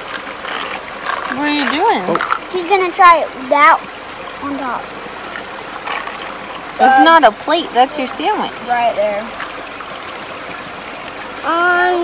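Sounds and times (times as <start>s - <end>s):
running water rushing: 0.0s - 12.0s.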